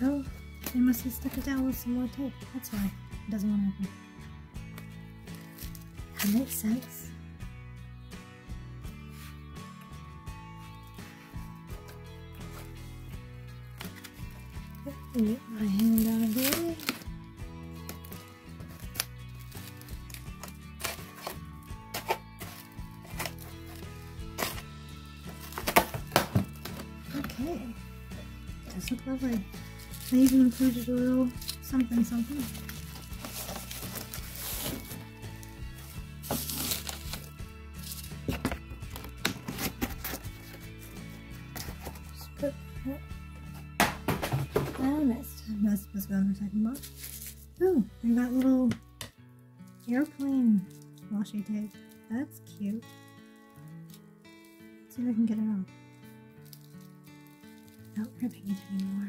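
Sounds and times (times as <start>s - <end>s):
soft background music: 0.0s - 59.0s
plastic packaging crackle: 14.0s - 17.1s, 17.8s - 24.6s, 28.7s - 40.6s, 46.8s - 47.5s, 49.7s - 51.0s, 56.3s - 59.0s
cardboard box being handled: 19.7s - 24.6s, 28.6s - 42.3s.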